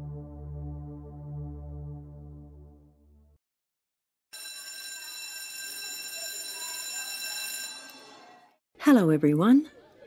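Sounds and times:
electric school bell ringing: 4.3 - 8.5.

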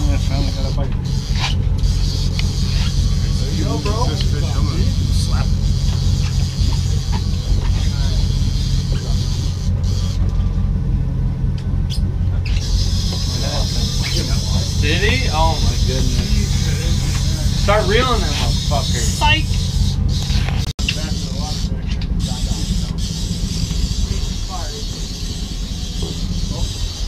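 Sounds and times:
boat engine droning: 0.0 - 27.0
voices: 0.0 - 27.0.

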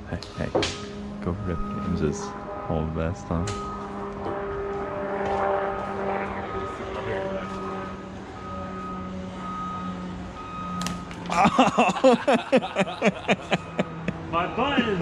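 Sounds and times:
steady droning tones: 0.0 - 15.0
men laughing heartily: 11.2 - 15.0.

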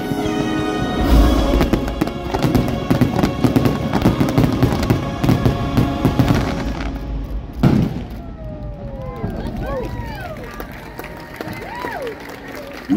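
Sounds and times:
orchestral music: 0.0 - 9.1
fireworks bangs and crackling: 1.0 - 10.8.

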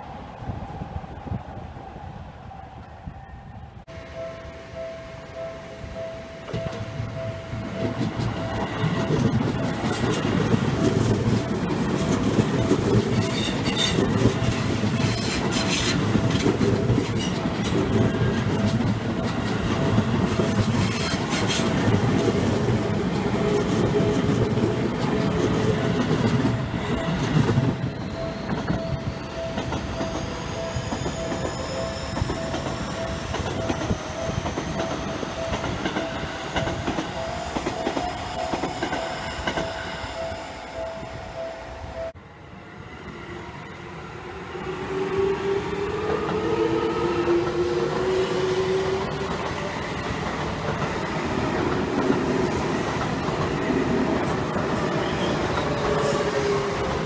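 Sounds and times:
wheels clattering on rails: 6.4 - 39.8.

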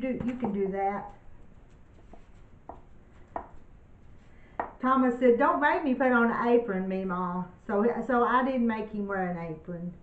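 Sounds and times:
cup knocking against baking dish: 4.6 - 4.8.

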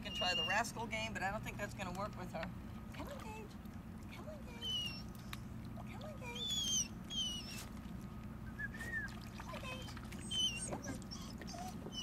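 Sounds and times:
puppy whining: 0.0 - 0.8, 4.5 - 5.4, 6.4 - 7.7, 8.6 - 12.0.

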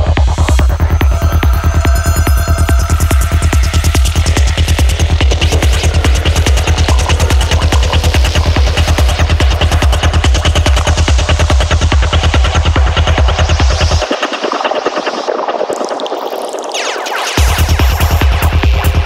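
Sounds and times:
heavy bass line: 0.0 - 14.1, 17.4 - 19.0
psytrance electronic pulses: 0.0 - 18.4.

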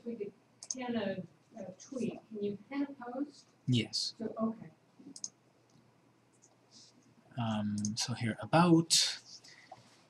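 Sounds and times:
computer mouse clicks: 0.6 - 0.8, 5.1 - 5.4, 7.8 - 8.0.

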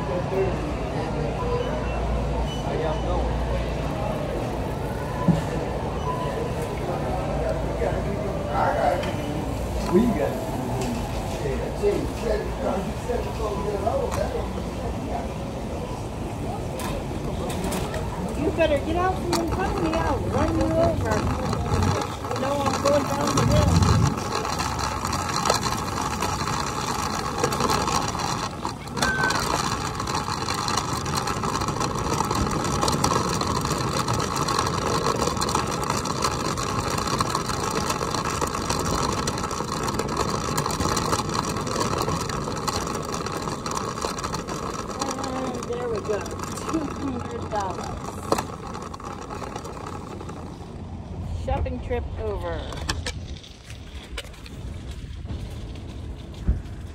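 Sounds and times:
wheels rolling over asphalt: 0.0 - 56.9.

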